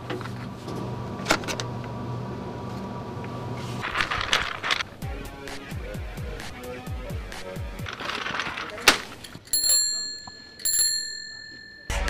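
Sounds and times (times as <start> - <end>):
bicycle bell ringing: 9.5 - 12.0.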